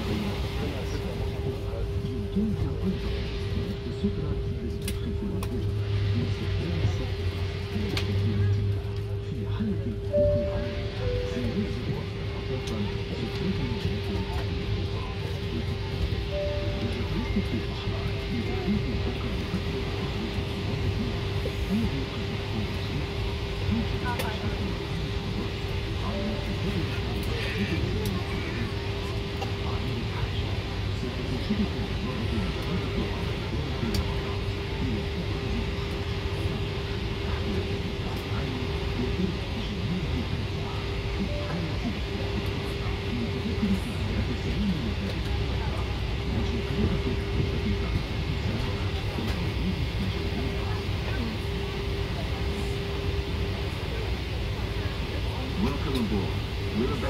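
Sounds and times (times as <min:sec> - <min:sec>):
aircraft cabin hum: 0:00.0 - 0:57.0
narration over speakers: 0:00.0 - 0:57.0.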